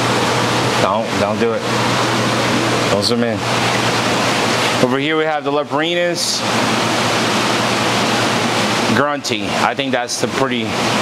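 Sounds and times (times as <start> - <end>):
low steady hum: 0.0 - 11.0
water rushing: 0.0 - 11.0.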